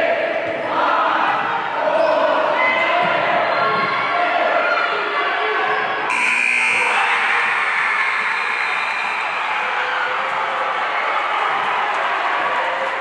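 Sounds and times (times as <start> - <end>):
crowd noise: 0.0 - 13.0
scoreboard buzzer: 6.1 - 9.4.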